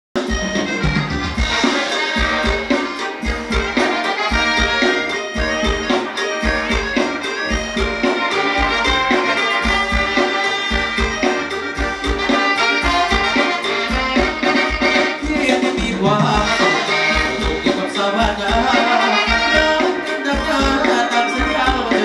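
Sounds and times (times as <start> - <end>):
live dance band melody: 0.2 - 22.0
steady bass drum beat: 0.2 - 22.0.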